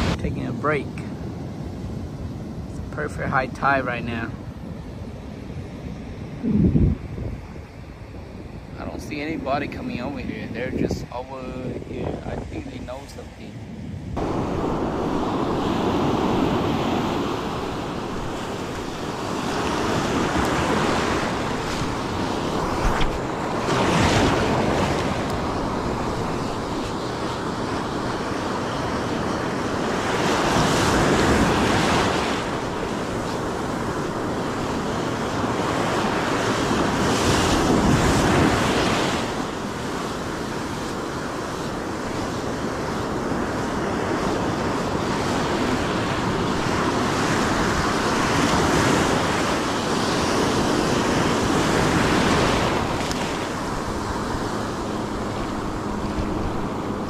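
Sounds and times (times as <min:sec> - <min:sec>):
ocean waves breaking: 0:00.0 - 0:57.0.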